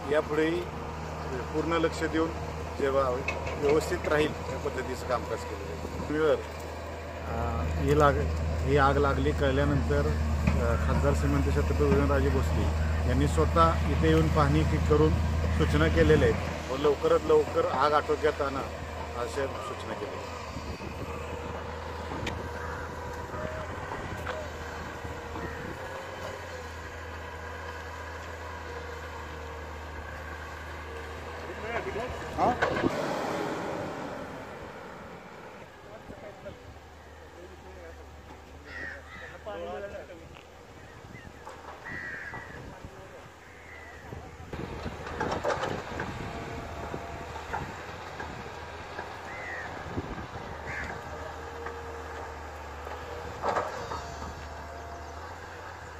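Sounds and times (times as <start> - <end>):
distant diesel engine rumble: 0.0 - 55.9
faint voices: 10.0 - 29.5.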